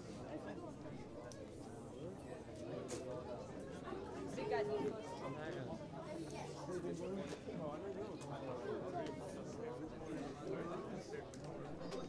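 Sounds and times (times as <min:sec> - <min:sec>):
crowd talking in a large hall: 0:00.0 - 0:12.0.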